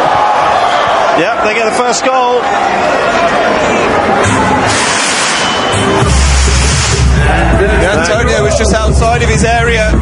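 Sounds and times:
crowd cheering: 0:00.0 - 0:09.0
loud music over loudspeakers: 0:04.2 - 0:10.0.

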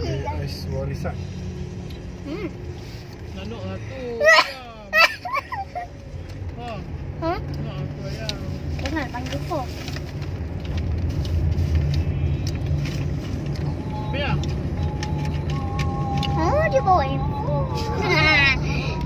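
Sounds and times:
car engine rumble inside cabin: 0:00.0 - 0:19.0
children's voices: 0:16.2 - 0:18.8.

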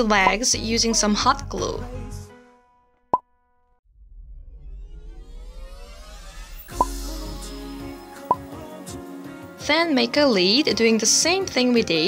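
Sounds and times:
background music: 0:00.0 - 0:02.9, 0:06.5 - 0:12.0
short pop sound effect: 0:06.1 - 0:07.0.

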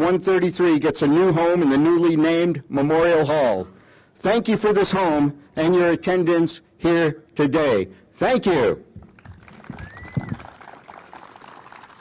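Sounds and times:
crowd applauding: 0:09.0 - 0:12.0.

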